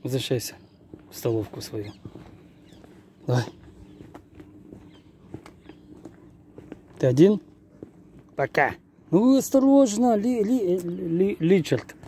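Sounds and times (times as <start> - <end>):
footsteps on brick paving: 0.8 - 8.5.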